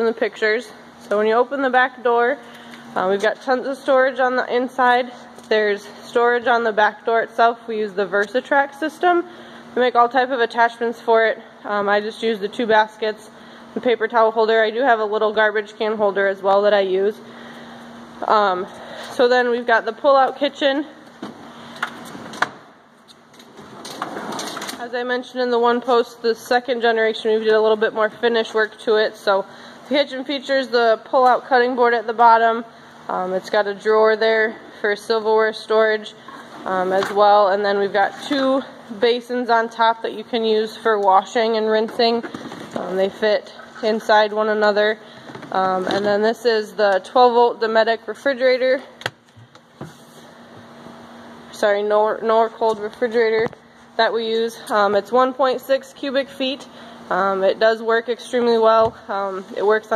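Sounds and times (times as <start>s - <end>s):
faint steady hum: 0.0s - 59.9s.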